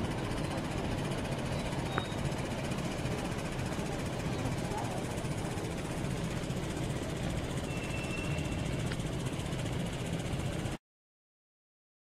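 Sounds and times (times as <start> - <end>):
traffic engines rumbling: 0.0 - 10.8.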